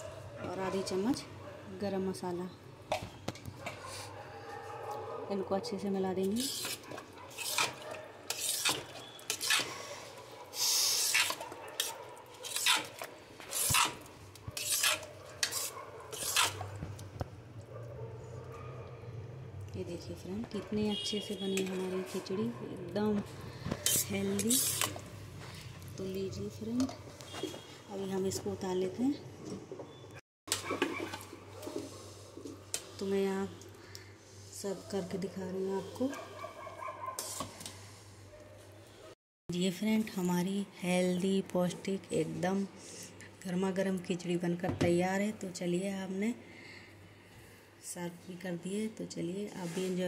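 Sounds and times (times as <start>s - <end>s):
metal ladle scraping pot: 6.3s - 17.0s, 23.6s - 25.1s.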